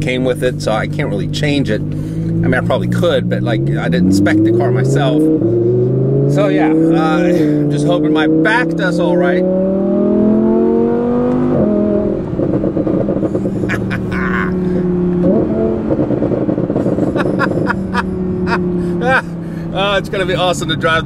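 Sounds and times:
exhaust crackle: 0:00.0 - 0:09.0, 0:09.8 - 0:21.0
car engine revving: 0:00.0 - 0:21.0.

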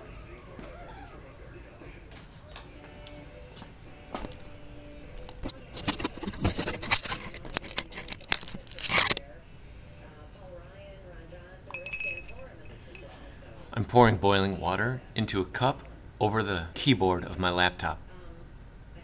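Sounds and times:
small hard objects clinking: 0:11.7 - 0:13.0.

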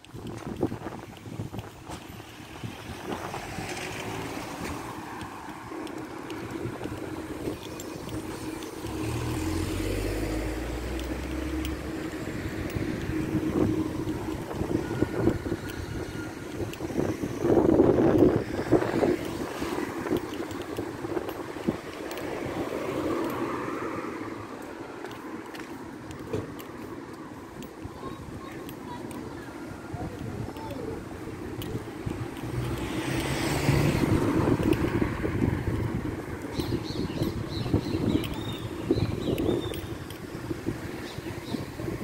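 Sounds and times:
cars passing slowly: 0:00.0 - 0:42.0
wind rumble on microphone: 0:00.0 - 0:42.0.

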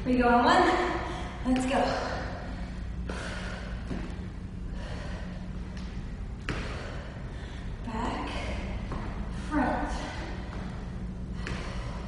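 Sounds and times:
steady low hum: 0:00.0 - 0:12.0
person breathing hard: 0:02.4 - 0:05.8, 0:06.5 - 0:12.0.

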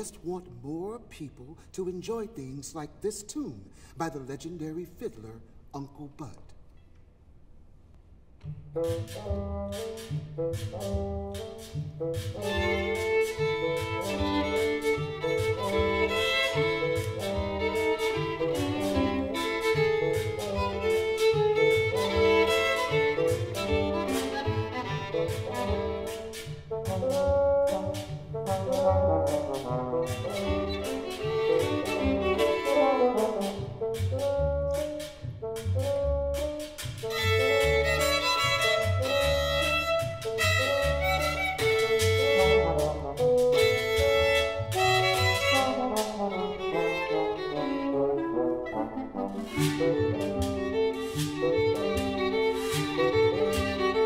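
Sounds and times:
double bass: 0:08.2 - 0:54.0
violin: 0:08.4 - 0:54.0
trombone and brass: 0:09.1 - 0:41.5, 0:42.2 - 0:51.5.

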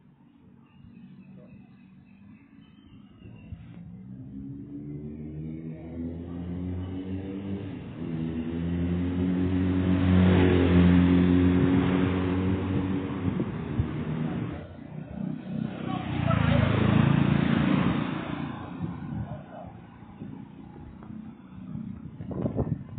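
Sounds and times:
road noise: 0:00.0 - 0:22.9
vehicles passing by: 0:00.0 - 0:22.9.

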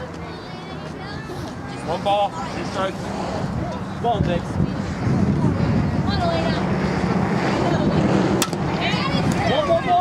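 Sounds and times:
wind rumble on microphone: 0:00.0 - 0:10.0
bat cracking a ball: 0:08.4 - 0:08.7.

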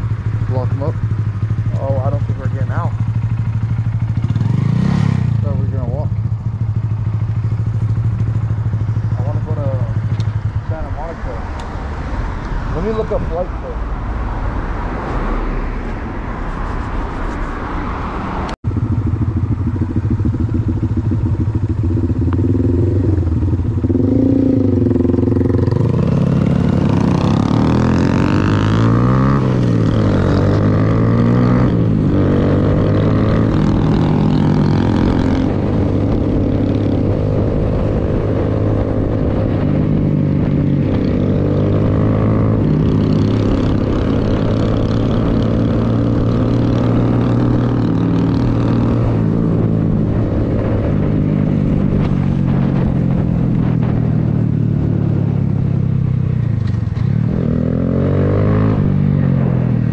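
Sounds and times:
motorcycle engine idling: 0:00.0 - 0:04.6, 0:05.4 - 0:11.0, 0:18.7 - 0:24.2
motorcycle accelerating through gears: 0:00.0 - 0:13.5, 0:18.4 - 0:59.9.

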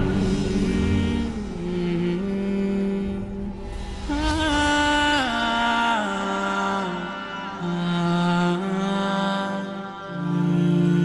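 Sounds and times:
chanting voice holding long notes: 0:00.0 - 0:11.0.

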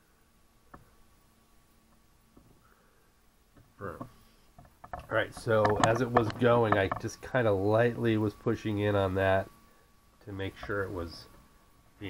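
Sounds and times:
faint printer hum: 0:00.0 - 0:12.0.

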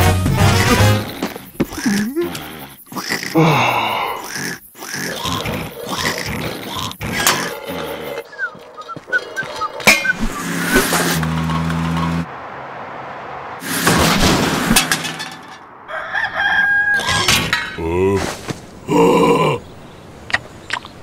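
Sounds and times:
cartoon character cry and grunts: 0:01.8 - 0:02.4.

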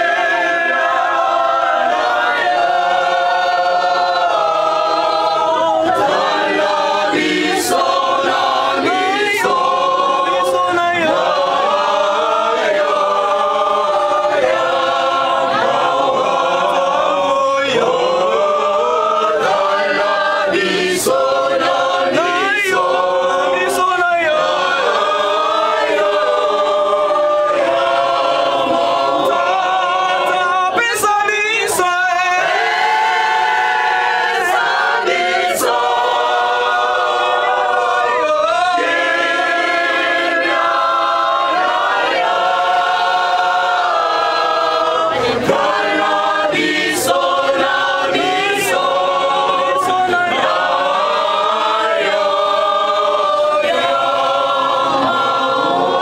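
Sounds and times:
group singing a cappella: 0:00.0 - 0:56.0.

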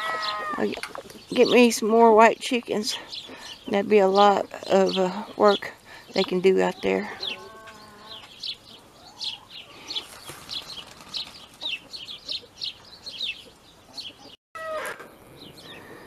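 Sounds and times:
chicken drawn-out call: 0:00.0 - 0:00.6, 0:07.1 - 0:08.3, 0:14.2 - 0:16.0
chickens chirping: 0:00.0 - 0:01.6, 0:02.2 - 0:16.0.

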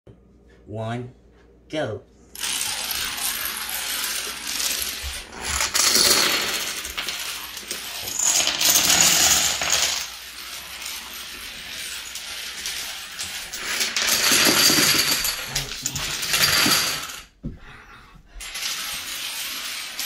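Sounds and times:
plastic dominoes toppling: 0:02.4 - 0:17.3, 0:18.4 - 0:20.0.

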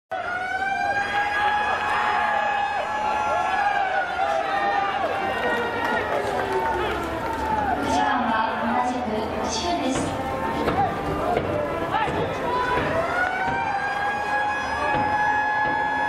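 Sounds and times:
crowd holding long note: 0:00.1 - 0:16.0
shouted calls: 0:10.3 - 0:16.0.

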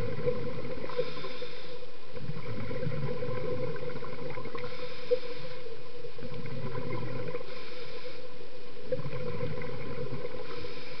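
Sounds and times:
diver exhaling bubbles underwater: 0:00.0 - 0:01.1, 0:02.2 - 0:04.8, 0:06.2 - 0:07.6, 0:08.9 - 0:10.7.

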